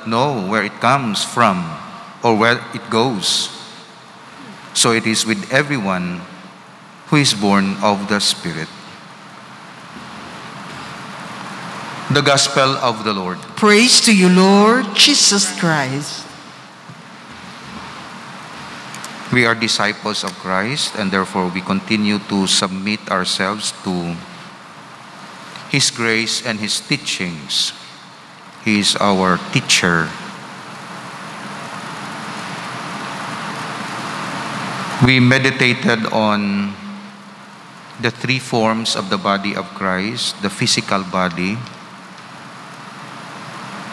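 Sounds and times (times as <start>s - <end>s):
steady hissing noise: 0.0s - 43.9s.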